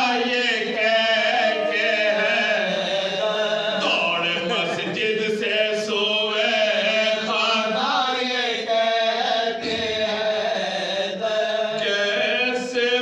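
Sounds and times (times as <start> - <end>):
men chanting mourning elegy: 0.0 - 5.1.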